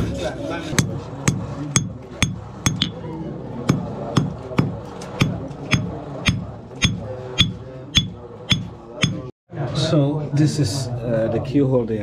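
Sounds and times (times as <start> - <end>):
hammer striking thin metal: 0.7 - 3.0, 3.6 - 9.3.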